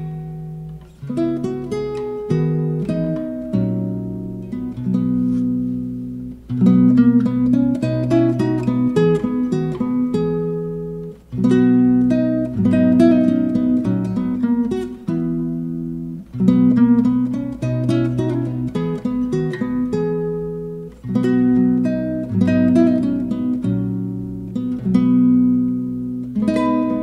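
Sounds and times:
classical guitar fingerpicking: 0.0 - 27.0.

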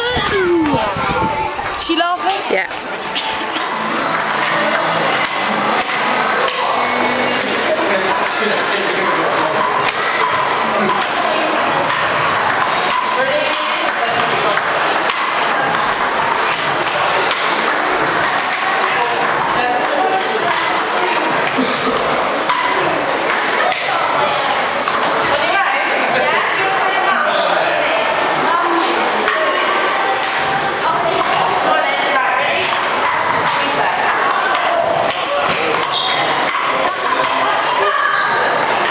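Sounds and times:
hubbub of voices: 0.0 - 38.9.

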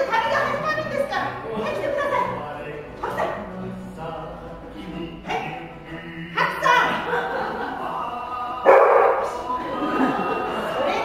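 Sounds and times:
dog barking: 8.7 - 9.4.

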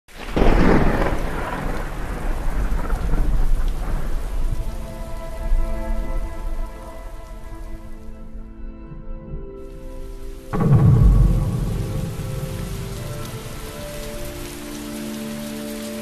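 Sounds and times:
drone of held musical notes: 3.8 - 16.0
loud rumble with hiss: 10.5 - 15.6.

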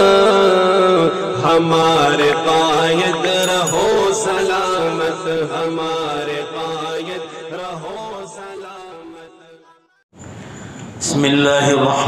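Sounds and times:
devotional vocal chant: 0.0 - 9.7.

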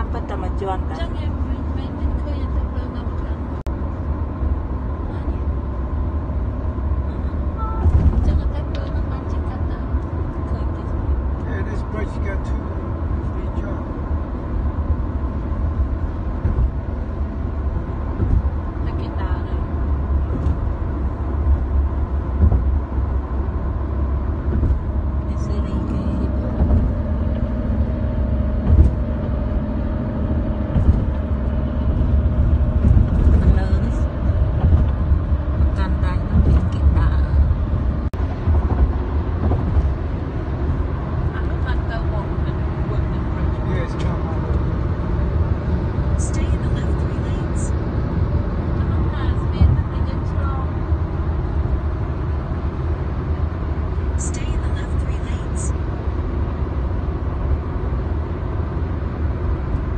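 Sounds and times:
tyre and engine rumble in car: 0.0 - 59.9.

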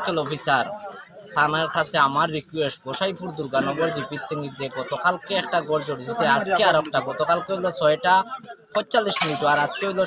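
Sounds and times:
man speaking: 0.0 - 0.7, 1.4 - 10.0.

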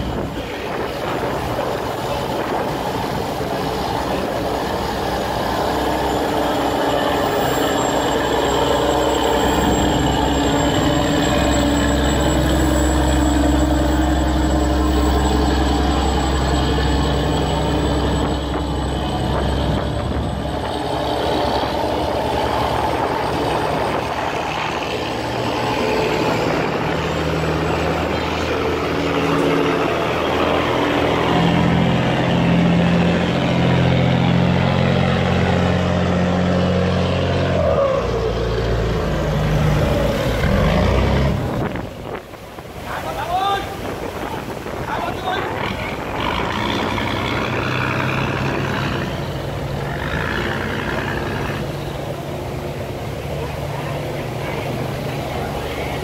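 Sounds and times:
boat engines running: 0.0 - 56.0
churning water rushing: 0.0 - 56.0.

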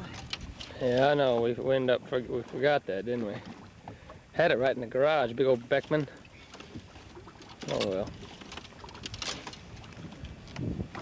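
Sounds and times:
water moving against boat hull: 0.0 - 11.0
wind on microphone: 8.0 - 11.0.

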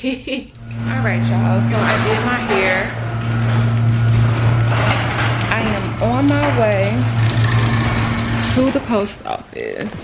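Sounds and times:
garage door opener motor humming: 0.5 - 9.5.

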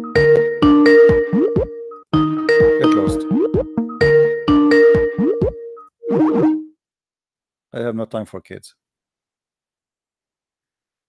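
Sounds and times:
cartoon sound effects: 5.2 - 6.7.

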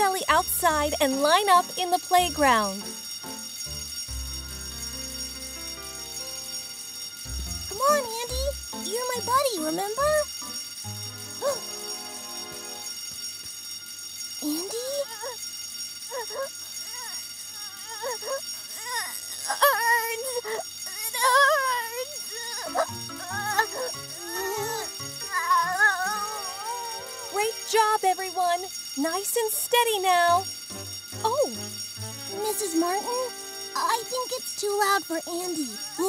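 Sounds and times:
soft background music: 0.0 - 13.0, 30.4 - 34.2
fire alarm ringing: 0.0 - 36.0
child crying: 14.4 - 15.4, 16.1 - 27.5, 35.5 - 36.0.

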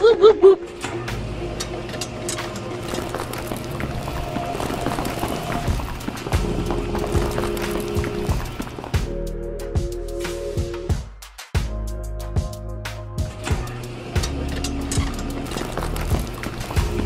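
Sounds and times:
background music: 0.0 - 17.0
auger scraping sand: 2.8 - 8.9.

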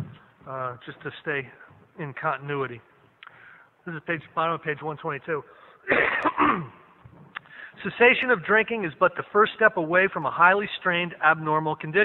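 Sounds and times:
man speaking: 0.0 - 3.0, 3.8 - 5.6, 7.7 - 12.0
man coughing: 5.9 - 6.9.

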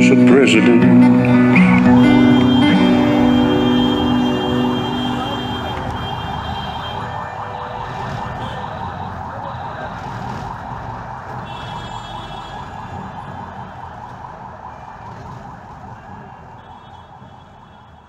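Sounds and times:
country blues instrumental: 0.0 - 6.0.

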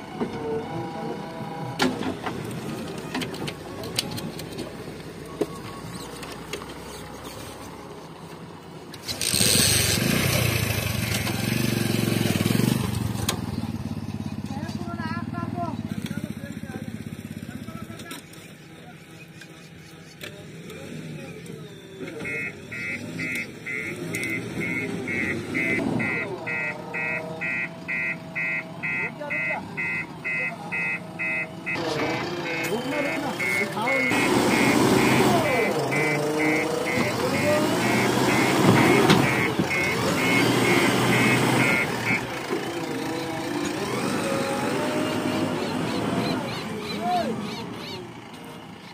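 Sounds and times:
diesel engine running: 0.0 - 18.8, 20.3 - 48.9
reversing alarm beeping: 22.0 - 42.4.

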